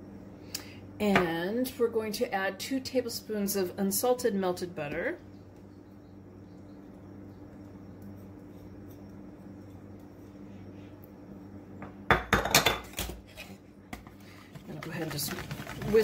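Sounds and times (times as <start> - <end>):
low steady hum: 0.0 - 16.0
utensils clattering in plastic bowl: 14.6 - 16.0.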